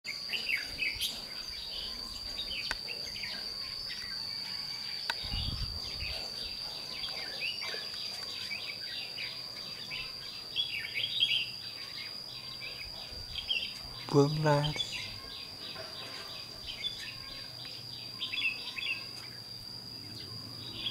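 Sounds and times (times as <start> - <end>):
birds chirping: 0.1 - 20.9
high-pitched insect drone: 0.1 - 20.9.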